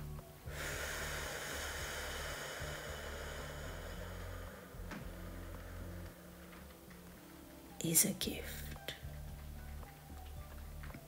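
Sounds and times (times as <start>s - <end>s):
low steady drone: 0.0s - 11.0s
slow breath close to microphone: 0.5s - 7.3s.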